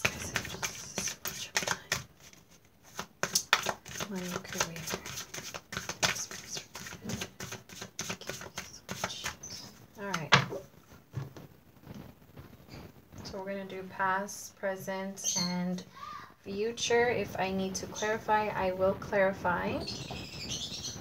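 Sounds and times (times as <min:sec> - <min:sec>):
cards being shuffled: 0:00.0 - 0:10.6.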